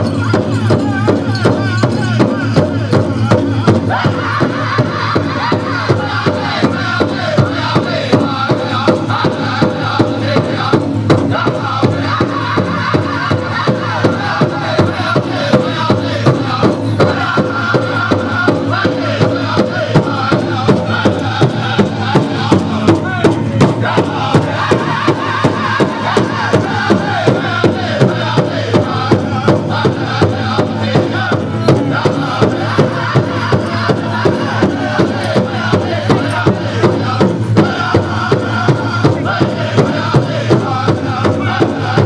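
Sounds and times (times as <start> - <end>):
big drum steady beat: 0.0 - 42.0
group chanting: 0.0 - 42.0.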